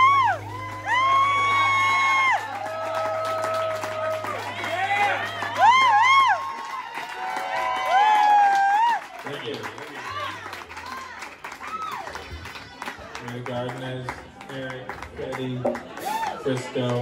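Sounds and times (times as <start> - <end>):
audience whooping and cheering: 0.0 - 13.2, 15.8 - 16.7.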